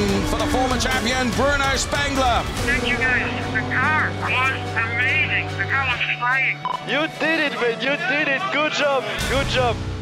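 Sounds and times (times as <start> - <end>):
people shouting and cheering: 0.0 - 2.4
background music: 0.0 - 10.0.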